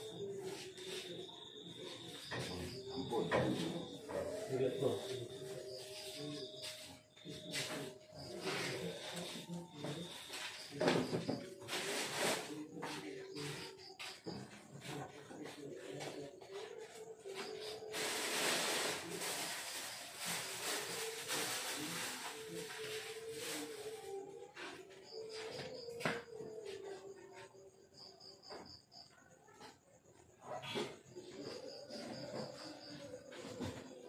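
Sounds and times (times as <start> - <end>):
indistinct voices: 0.0 - 34.0.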